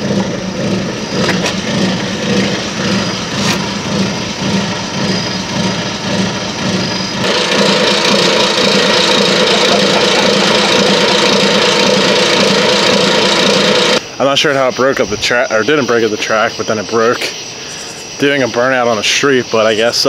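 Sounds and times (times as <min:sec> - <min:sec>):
truck engine idling: 0:00.0 - 0:14.4.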